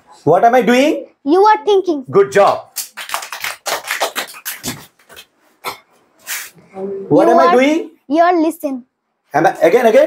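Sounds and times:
children clapping: 2.5s - 5.3s.

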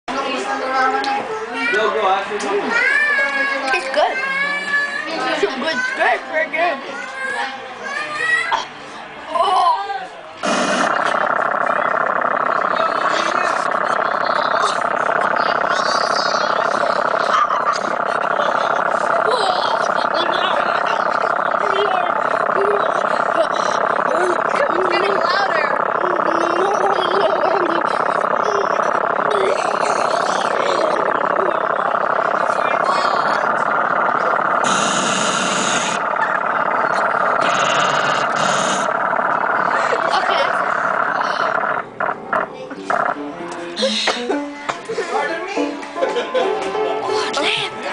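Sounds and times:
people chattering: 0.1s - 47.9s
long rasping fart noise: 10.4s - 11.1s.

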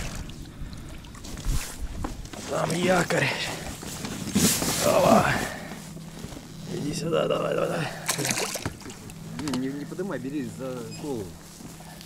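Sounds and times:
fish thrashing and splashing water: 0.0s - 1.3s, 8.0s - 9.2s.

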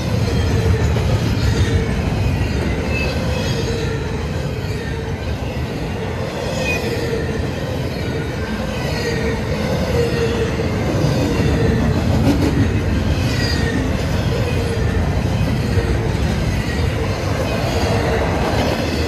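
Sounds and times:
freight train wheels rumbling: 0.0s - 19.0s.

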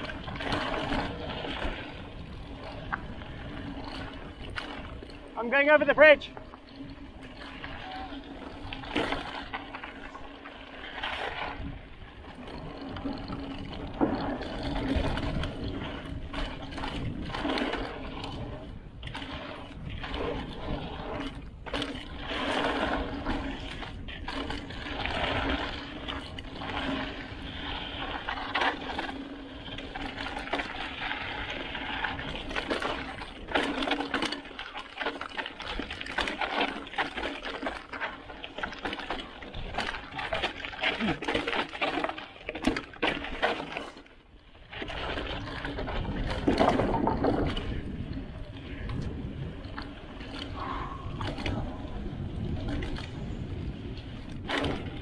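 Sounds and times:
tyres rolling over dirt and stones: 0.0s - 55.0s
bike knocks and rattles: 11.6s - 44.0s, 44.7s - 47.9s, 51.2s - 55.0s.

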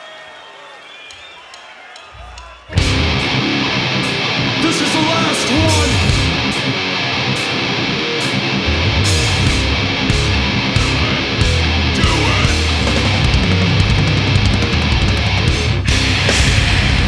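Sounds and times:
death metal band playing: 2.2s - 17.0s.

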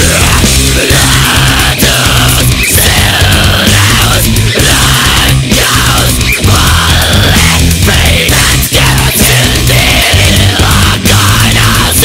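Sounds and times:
death metal band playing: 0.0s - 12.0s.

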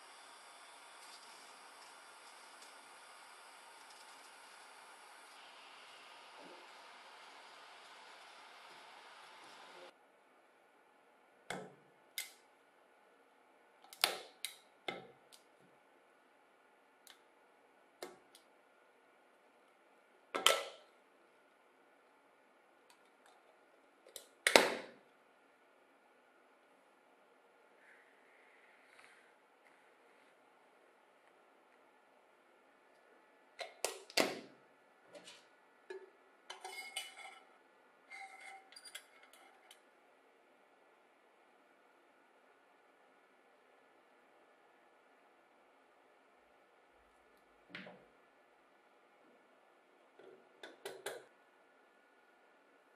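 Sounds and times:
tin can clinks and scrapes: 36.5s - 37.5s.

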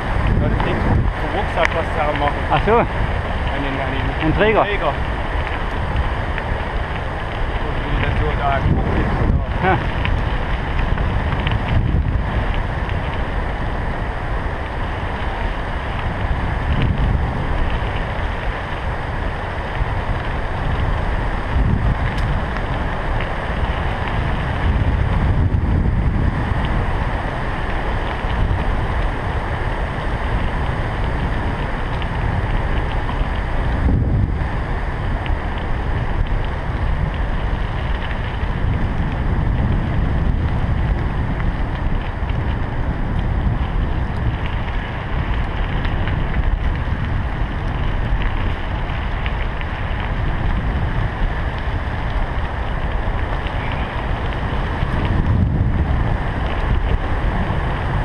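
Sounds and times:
low rumble: 0.0s - 58.0s
wind buffeting microphone: 0.0s - 58.0s.

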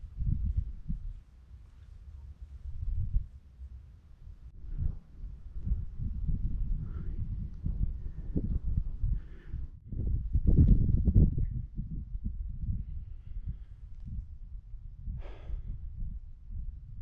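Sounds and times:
wind buffeting microphone: 0.0s - 1.3s, 2.0s - 3.4s, 4.2s - 17.0s.

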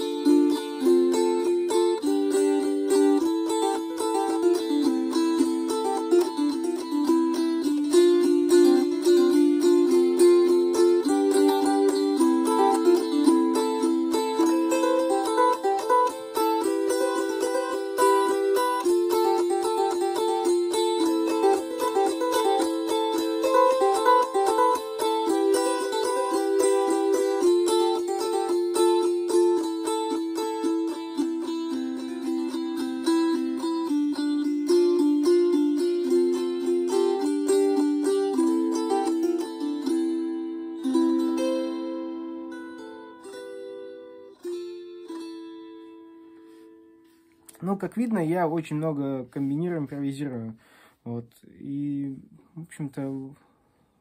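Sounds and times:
psaltery strummed rapidly: 0.0s - 40.2s.

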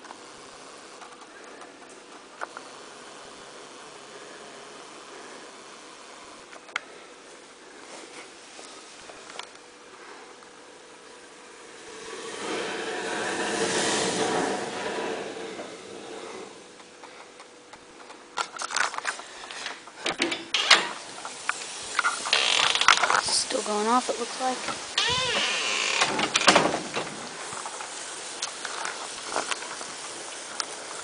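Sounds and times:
sparkler bomb hissing: 2.3s - 6.6s, 10.8s - 17.0s, 20.8s - 31.0s
sharp crackling pops: 16.8s - 31.0s.

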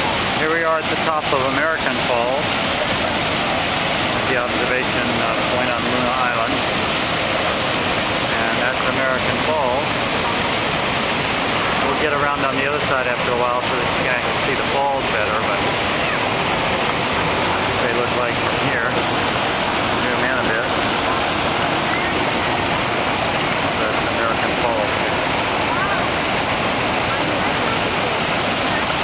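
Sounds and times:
waterfall rushing: 0.0s - 29.0s.

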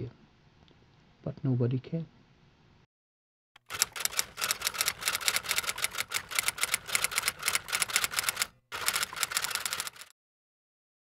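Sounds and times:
typewriter keystrokes clattering: 3.6s - 10.1s.

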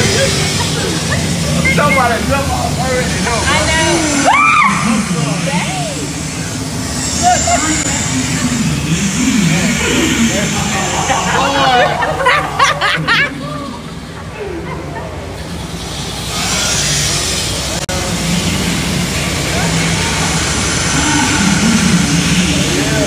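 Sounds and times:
high laughing: 0.0s - 2.3s, 3.5s - 15.6s
people talking and exclaiming: 0.0s - 23.0s
steady rushing noise: 0.0s - 23.0s.

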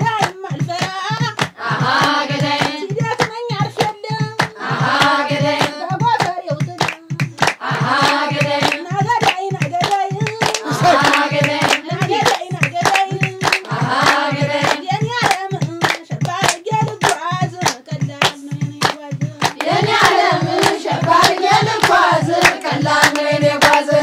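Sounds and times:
woman singing a folk song: 0.0s - 1.5s, 2.2s - 4.6s, 5.2s - 19.6s
group clapping in rhythm: 0.0s - 24.0s
low drum beat: 0.0s - 24.0s.

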